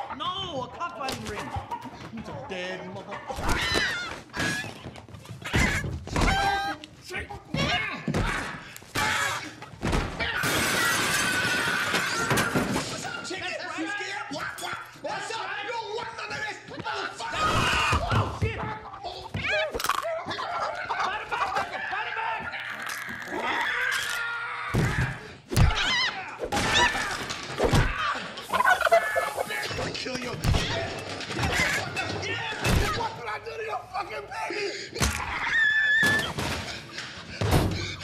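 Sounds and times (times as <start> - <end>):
chicken squawking: 28.4 - 29.8.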